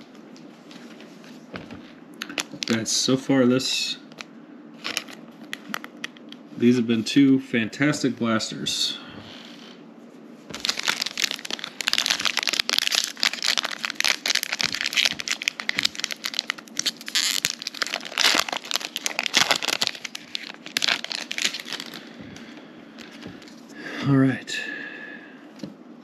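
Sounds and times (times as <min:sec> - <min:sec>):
plastic wrapper crinkling and tearing: 0:02.2 - 0:02.8, 0:04.2 - 0:06.2, 0:10.5 - 0:23.6.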